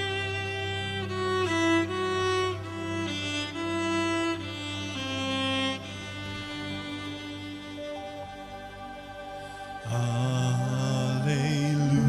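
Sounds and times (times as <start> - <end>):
bowed cello: 0.0 - 12.0
people singing long notes: 9.4 - 12.0.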